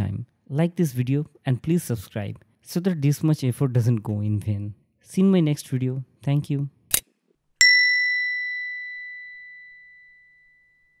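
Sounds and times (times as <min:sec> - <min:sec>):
bell ding ringing out: 0:07.6 - 0:11.0.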